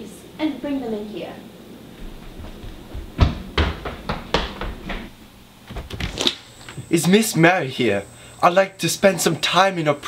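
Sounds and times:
quick footsteps on hardwood floor: 2.0 - 6.3.

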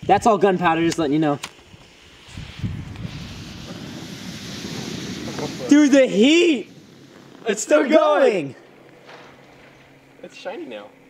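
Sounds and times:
gunpowder burning with whoosh: 0.1 - 10.2.

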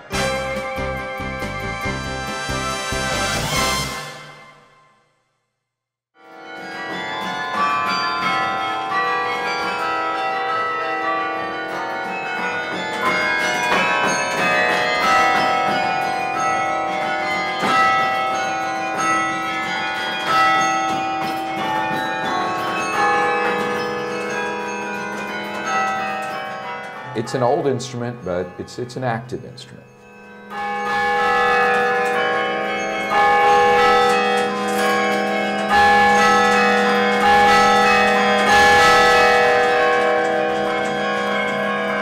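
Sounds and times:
carillon bells melody: 6.2 - 42.0.

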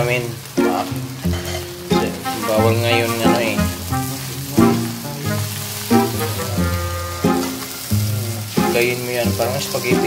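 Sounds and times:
background music with held notes: 0.0 - 10.0
rice sizzling in a wok: 0.0 - 10.0.

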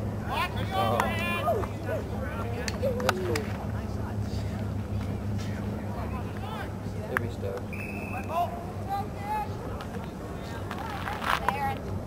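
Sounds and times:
steady low hum: 0.0 - 12.0
people shouting outdoors: 0.2 - 3.4, 7.8 - 9.7.

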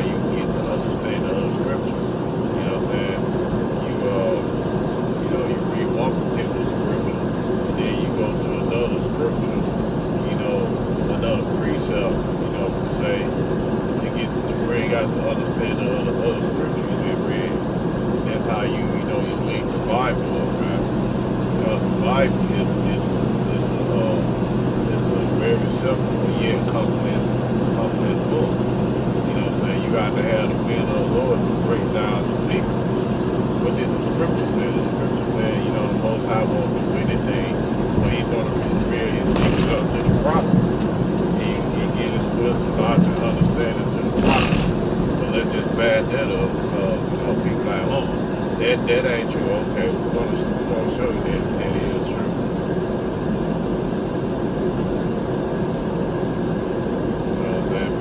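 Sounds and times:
road and engine noise in car: 0.0 - 58.0.

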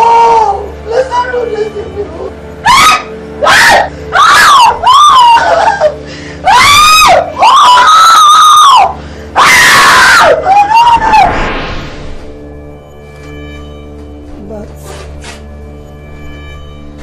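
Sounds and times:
person screaming: 2.7 - 11.6.

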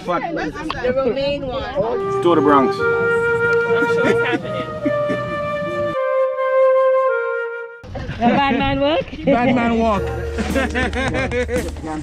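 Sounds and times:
voices: 0.0 - 6.1, 8.4 - 12.0
flute holding a long note: 1.8 - 7.8, 10.0 - 11.0.

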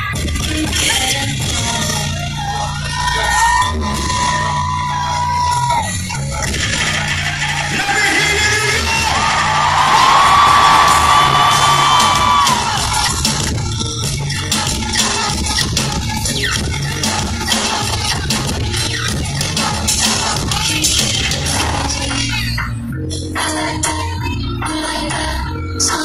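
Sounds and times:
live concert music over pa: 0.0 - 26.0
crowd yelling: 2.4 - 6.0, 7.1 - 13.2.

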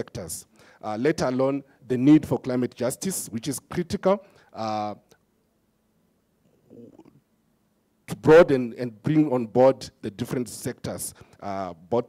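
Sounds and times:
man's faint vocal murmur: 6.6 - 7.2.

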